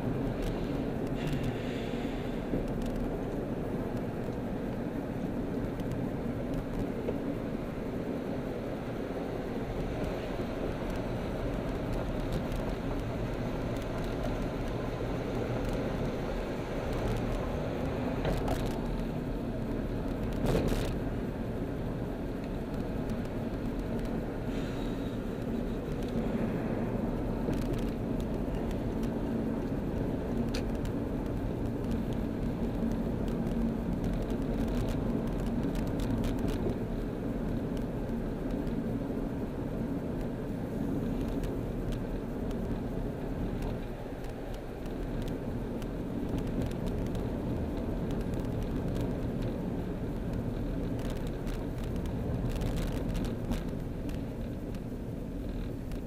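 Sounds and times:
car engine and tyre noise: 0.0 - 56.0.

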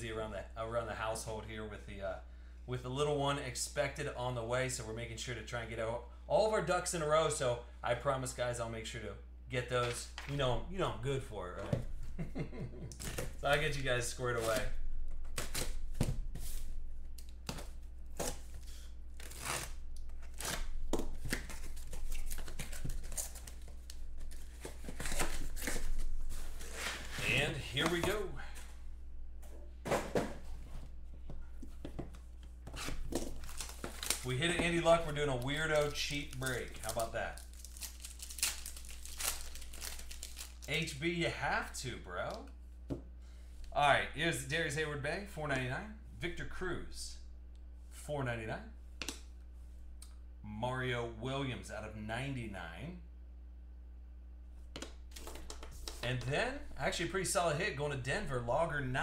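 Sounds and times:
steady low hum: 0.0 - 59.0
card packs rustling: 13.0 - 28.8, 29.9 - 40.9
cards clicking and rustling: 32.9 - 40.7.

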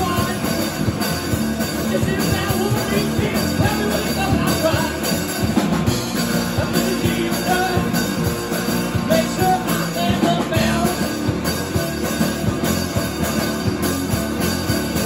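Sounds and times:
drum kit: 0.0 - 15.0
electric guitar: 0.0 - 15.0
live rock band: 0.0 - 15.0.

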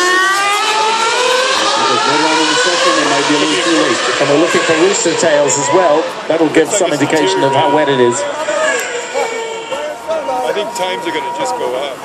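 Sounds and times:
racing car engine accelerating: 0.0 - 6.6.

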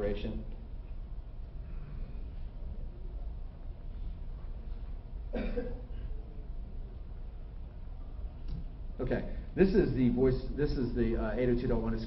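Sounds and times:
low steady hum: 0.0 - 12.0
man coughing: 5.3 - 6.2.

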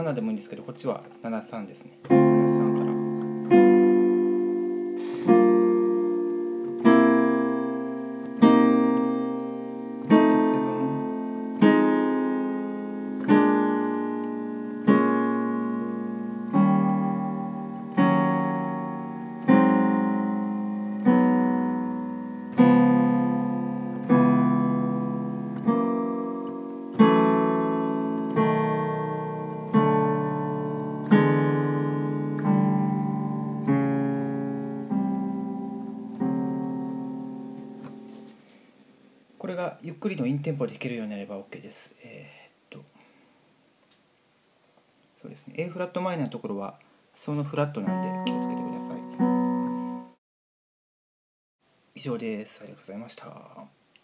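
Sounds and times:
piano chords: 0.0 - 38.4, 47.2 - 50.2.

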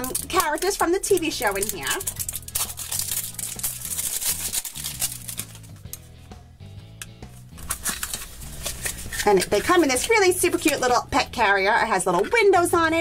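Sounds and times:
packaging crinkling and tearing: 0.0 - 6.0, 7.4 - 9.9
soft background music: 0.0 - 13.0.

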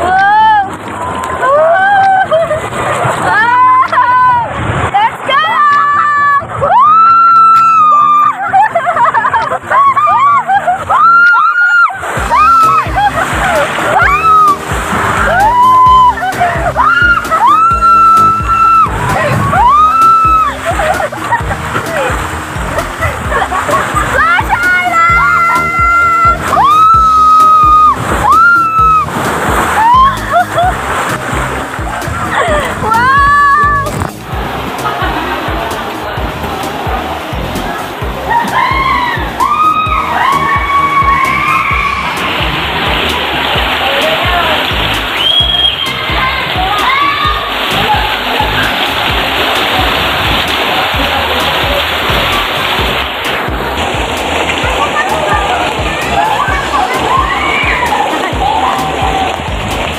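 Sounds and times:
rushing and splashing water: 0.0 - 59.9
soft voices: 54.5 - 59.7.

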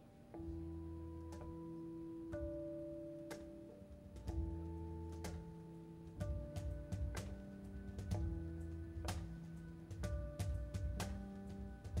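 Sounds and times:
electric bass: 7.8 - 12.0.

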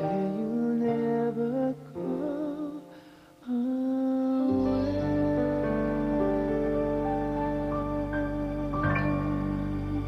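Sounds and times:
pop ballad singing with vibrato: 0.0 - 10.0.

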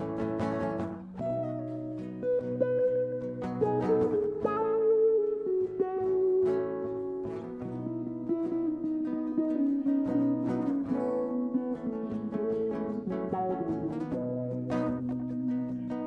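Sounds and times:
acoustic guitar playing: 0.0 - 16.0.

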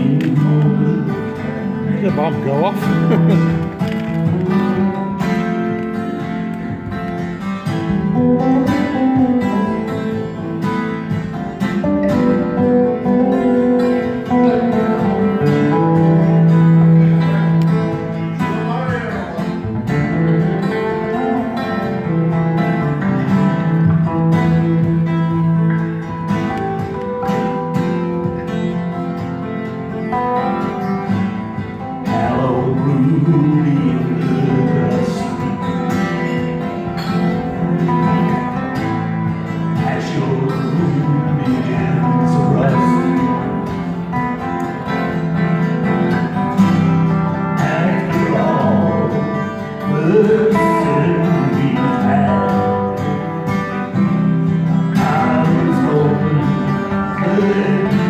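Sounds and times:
two acoustic guitars playing: 0.0 - 58.0.

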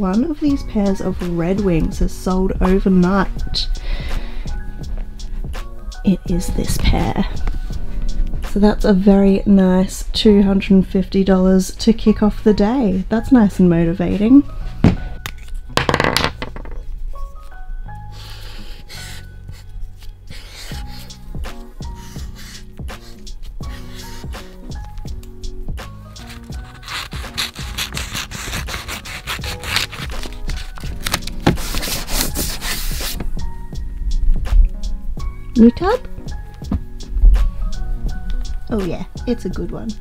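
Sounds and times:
background music: 0.0 - 40.0
scissors cutting paper: 20.0 - 25.1, 26.1 - 33.2
paper being handled: 22.0 - 24.5, 26.2 - 33.3
boots knocking: 36.3 - 37.5
leather boots rustling and scuffing: 36.3 - 37.7.

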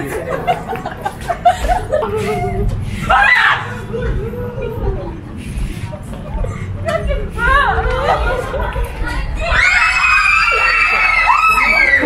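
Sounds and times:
excited shrieking voices: 1.9 - 6.6, 7.3 - 12.0
long high-pitched scream: 9.5 - 12.0.

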